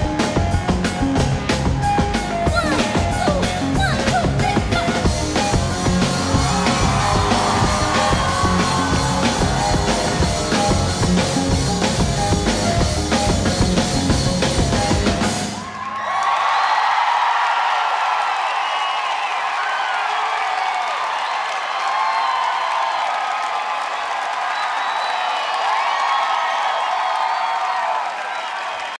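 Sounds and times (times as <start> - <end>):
band music: 0.0 - 15.9
crowd cheering and applauding: 0.0 - 29.0
whoops and screams: 6.0 - 10.4, 15.6 - 29.0.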